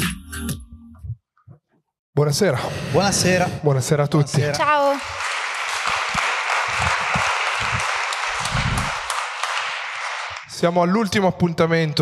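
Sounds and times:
audience applauding: 0:04.6 - 0:10.5.

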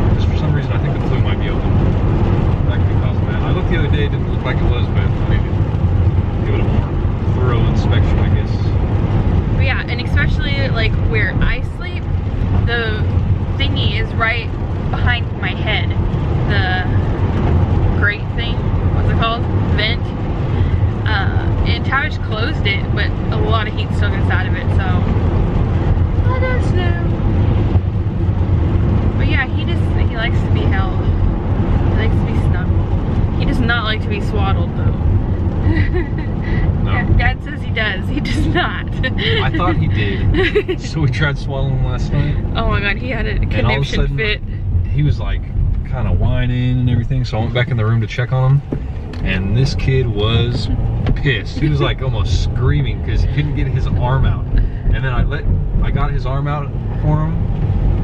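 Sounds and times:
people talking: 0:00.0 - 0:01.7, 0:02.7 - 0:05.6, 0:06.4 - 0:08.7, 0:09.6 - 0:12.0, 0:12.7 - 0:17.0, 0:18.0 - 0:20.1, 0:21.0 - 0:25.1, 0:26.3 - 0:27.1, 0:29.2 - 0:31.1, 0:32.0 - 0:32.7, 0:33.4 - 0:35.0, 0:35.7 - 0:48.6, 0:49.2 - 0:57.4
road and engine drone: 0:00.0 - 0:58.0.

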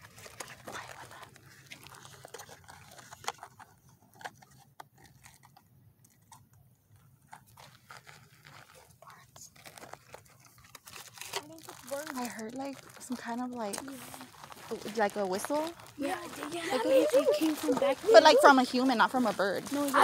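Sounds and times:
footsteps crunching on gravel: 0:11.6 - 0:20.0
voices: 0:11.6 - 0:20.0.

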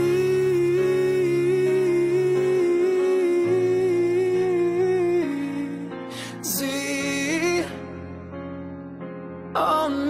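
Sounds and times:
person singing a long note: 0:00.0 - 0:05.9.

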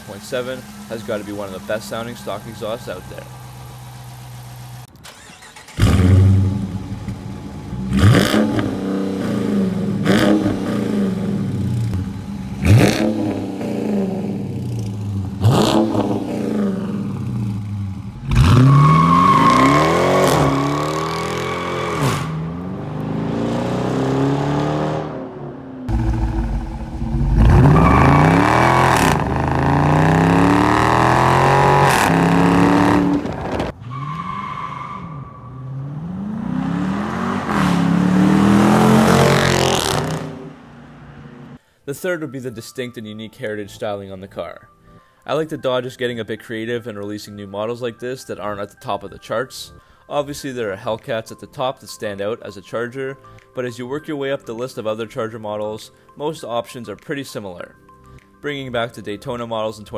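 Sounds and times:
car engine revving: 0:00.0 - 0:33.8, 0:35.6 - 0:41.6.

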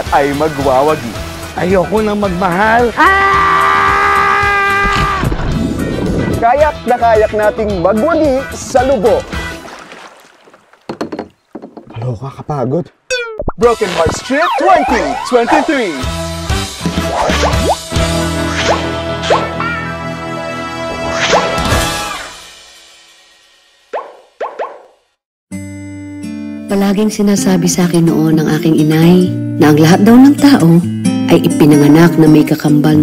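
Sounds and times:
soft music: 0:00.0 - 0:04.5, 0:05.1 - 0:09.8, 0:13.6 - 0:21.2, 0:25.5 - 0:33.0
kayak paddle splashes and knocks: 0:09.0 - 0:12.0
rising bloop sound effects: 0:13.1 - 0:13.6, 0:14.4 - 0:15.7.

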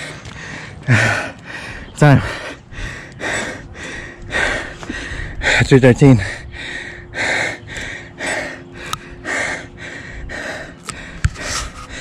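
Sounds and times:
heavy gasping breaths: 0:00.0 - 0:12.0.

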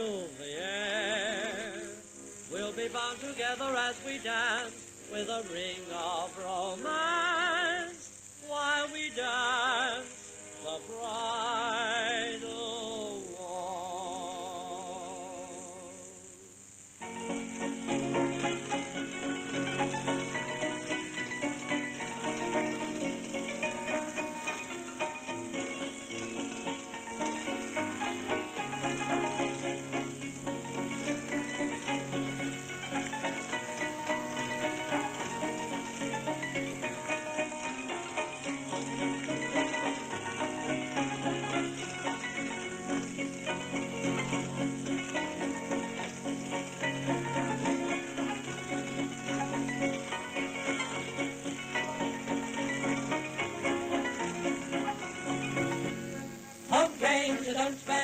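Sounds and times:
street barrel organ playing: 0:17.0 - 0:56.6.

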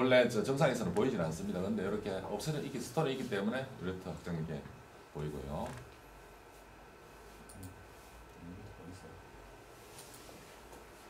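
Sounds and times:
room hum: 0:00.0 - 0:11.0
computer mouse clicks: 0:07.4 - 0:07.8.

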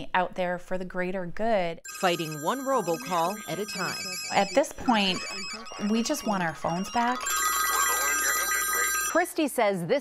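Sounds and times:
smartphones ringing: 0:01.9 - 0:09.2.

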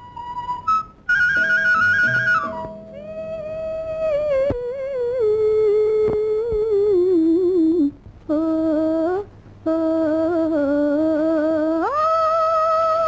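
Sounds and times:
woman humming a melody: 0:02.8 - 0:13.0.

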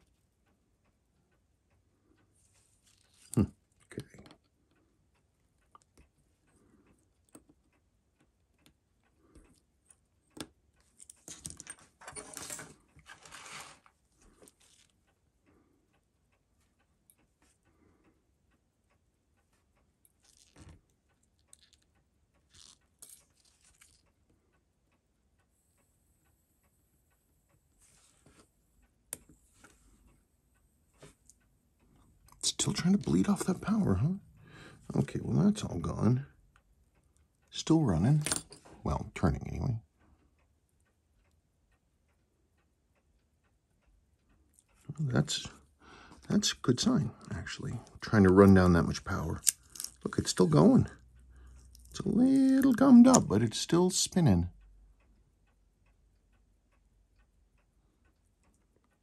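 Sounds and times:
rustling noise: 0:12.0 - 0:14.9, 0:27.8 - 0:28.5
tweezers clicking on watch parts: 0:21.2 - 0:24.1, 0:48.5 - 0:50.6, 0:51.5 - 0:53.3.

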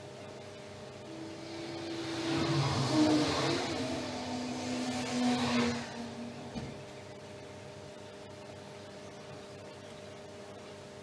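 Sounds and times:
vehicle passing by: 0:01.0 - 0:07.0.

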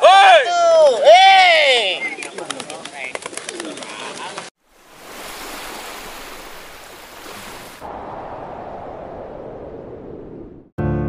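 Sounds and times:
wind-like rushing hiss: 0:04.6 - 0:10.4.

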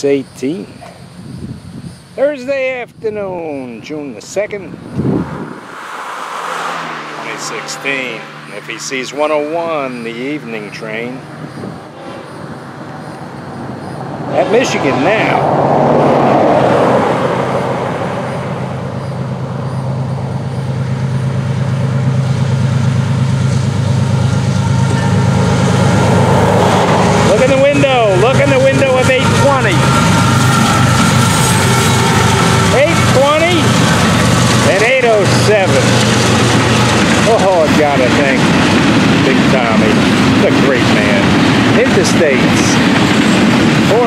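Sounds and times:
diesel locomotives passing: 0:03.5 - 0:44.0.

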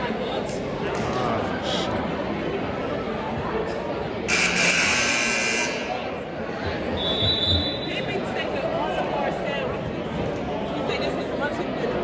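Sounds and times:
crowd chatter: 0:00.0 - 0:12.0
scoreboard buzzer: 0:04.3 - 0:05.9.

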